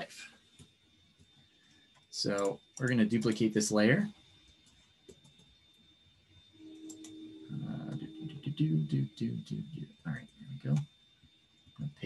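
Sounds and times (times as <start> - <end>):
computer mouse clicks: 2.3 - 3.4, 6.8 - 7.2
man humming low tune: 6.8 - 10.8.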